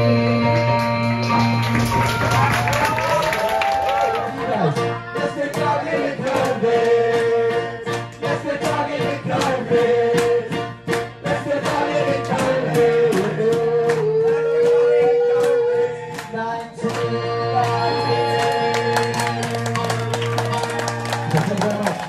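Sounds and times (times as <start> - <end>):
person singing: 0.0 - 1.6, 4.2 - 19.8
electric keyboard with beat: 0.0 - 2.5, 4.1 - 22.0.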